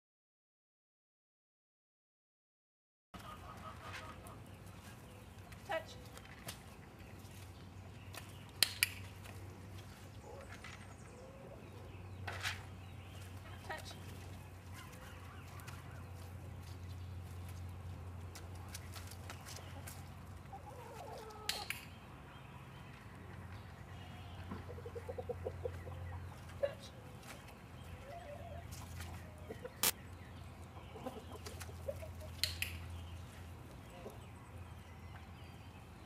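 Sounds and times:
chickens clucking: 3.2s - 5.2s, 18.4s - 21.8s, 23.2s - 34.4s.

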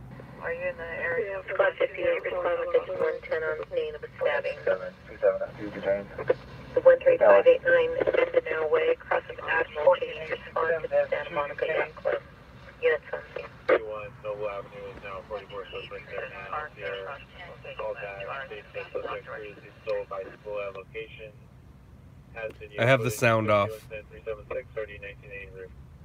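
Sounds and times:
voices over police scanner radio: 0.4s - 21.4s, 22.4s - 25.7s.

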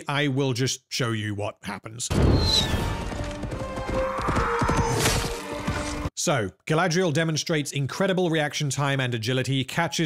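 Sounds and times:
galloping horse hoofbeats: 2.9s - 5.0s.

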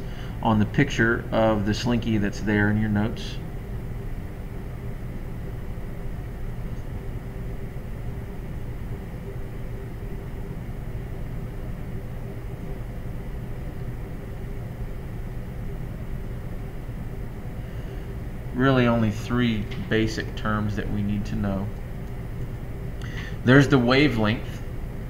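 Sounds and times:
low hum and hiss: 0.0s - 25.0s.

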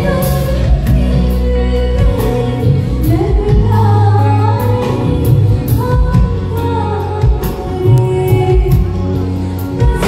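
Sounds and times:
bass line: 0.0s - 10.0s
woman singing into a microphone: 0.0s - 10.0s.

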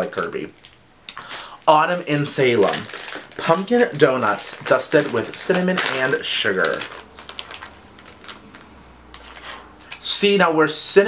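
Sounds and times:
plastic bag crinkling: 0.0s - 10.2s.

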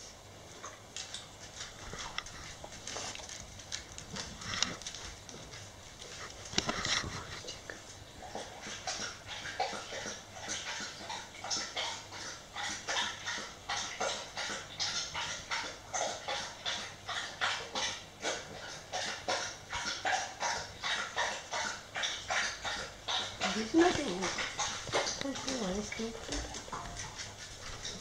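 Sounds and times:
dog panting: 1.4s - 28.0s.

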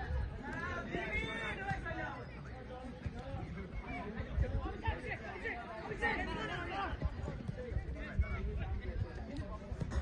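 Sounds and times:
people chattering and calling out: 0.0s - 10.0s.

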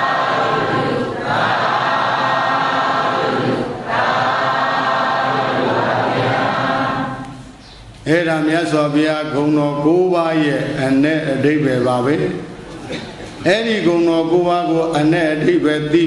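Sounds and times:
many voices chanting: 0.0s - 7.5s.

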